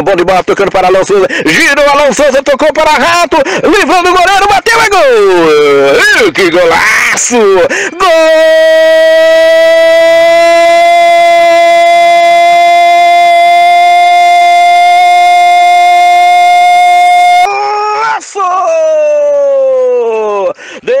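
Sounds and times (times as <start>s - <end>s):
man shouting drawn-out goal cry: 2.8s - 21.0s.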